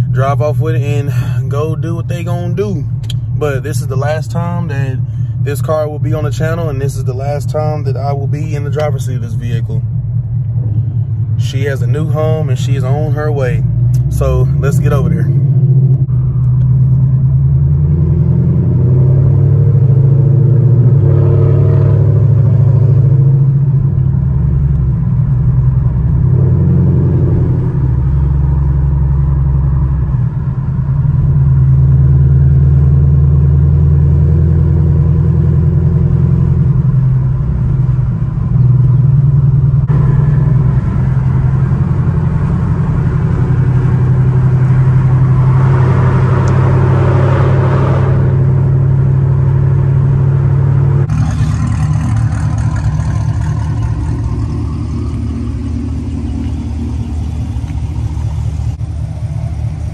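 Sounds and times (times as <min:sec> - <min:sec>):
car engine drone inside cabin: 0:00.0 - 0:59.9
road noise: 0:00.0 - 0:59.9.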